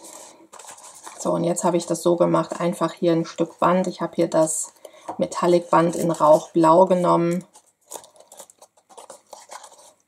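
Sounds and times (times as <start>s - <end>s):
paper handled by fingers: 7.4s - 10.0s
ribbon scratching through paper: 7.8s - 10.0s.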